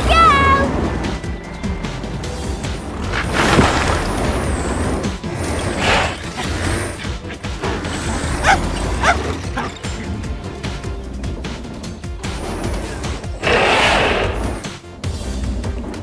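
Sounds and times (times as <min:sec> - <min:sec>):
cartoon background music: 0:00.0 - 0:16.0.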